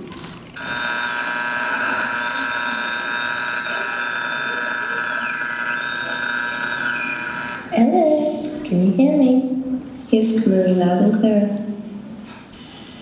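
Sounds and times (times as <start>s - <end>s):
electronic multi-tone alarm signal: 0.6s - 7.7s.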